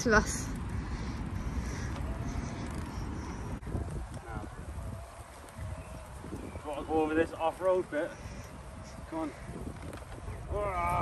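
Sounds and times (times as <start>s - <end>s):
bicycle tyres rolling over grass: 0.0s - 11.0s.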